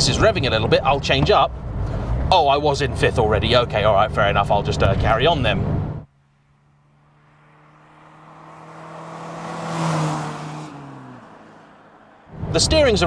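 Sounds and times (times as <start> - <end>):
car driving past: 6.1 - 13.0.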